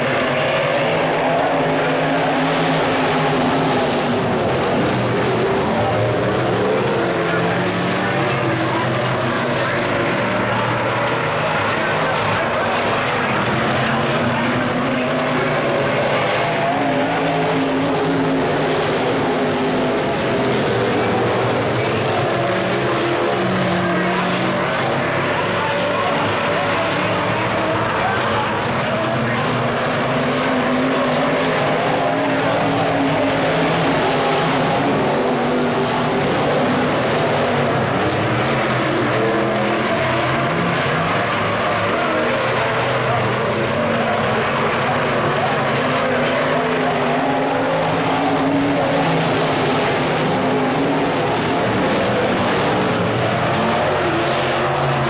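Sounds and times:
race car engines roaring: 0.0 - 55.0.

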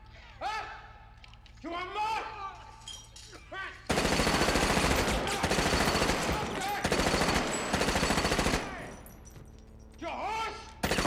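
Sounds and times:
automatic rifle fire: 3.9 - 9.1.

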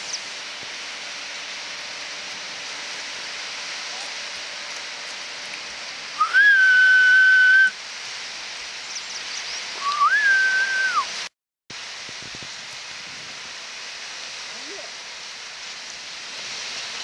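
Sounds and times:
surf and wind hiss: 0.0 - 17.0
long whistled notes: 6.1 - 7.8, 9.7 - 11.2.

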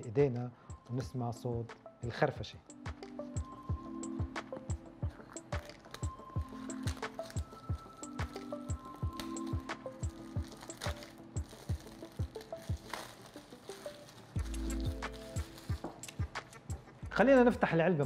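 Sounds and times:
electronic music with drum beat: 2.7 - 13.1, 14.4 - 18.0.

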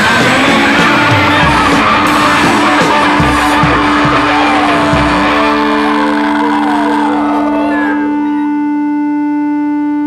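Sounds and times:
wavering sliding pitches: 0.0 - 8.8
electric guitar feedback drone: 0.0 - 10.0.

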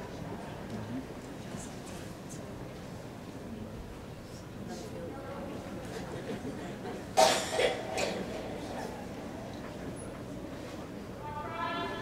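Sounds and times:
person coughing: 7.2 - 8.3.

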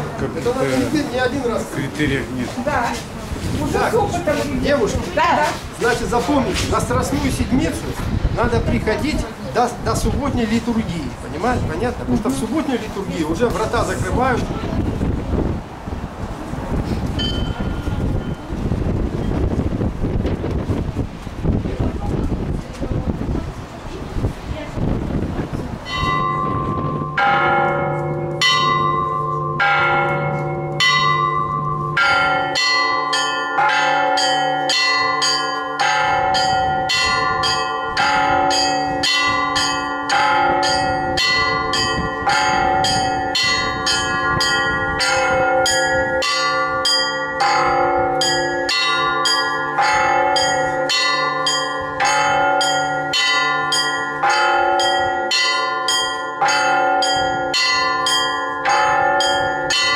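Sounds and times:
church bells ringing: 17.2 - 19.4, 25.8 - 59.9.

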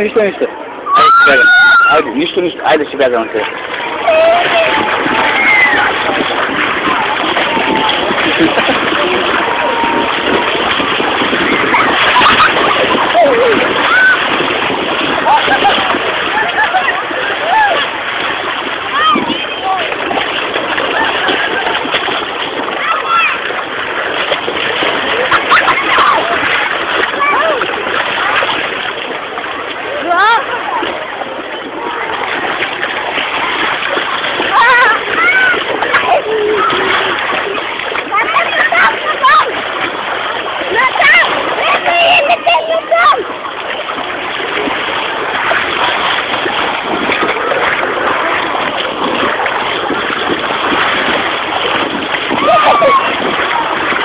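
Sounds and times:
sea water splashing: 0.0 - 54.0
people calling out: 3.9 - 10.6, 52.2 - 53.8.

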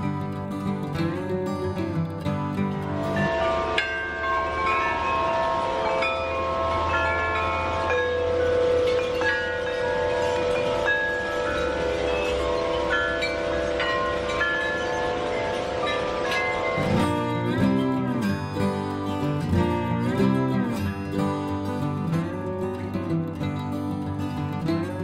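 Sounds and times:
tubular wind chimes ringing: 0.0 - 25.0.

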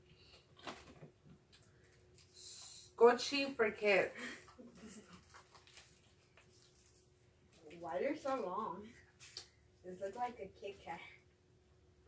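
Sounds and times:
candy wrappers rustling: 4.5 - 9.6.

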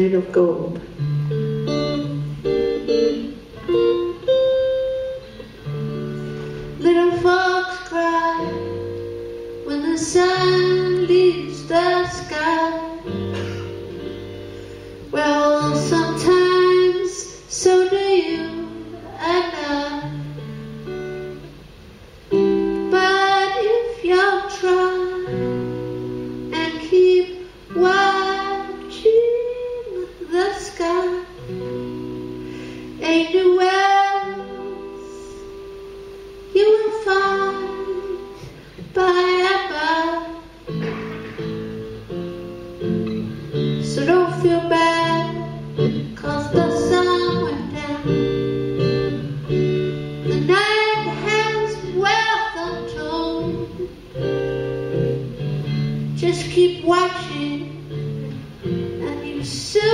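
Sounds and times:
acoustic guitar chords: 0.0 - 59.9
woman singing: 6.7 - 13.4, 15.1 - 20.4, 22.7 - 25.8, 26.4 - 31.6, 32.8 - 40.6, 43.7 - 49.6, 50.2 - 54.0, 56.2 - 58.0, 58.9 - 59.9.

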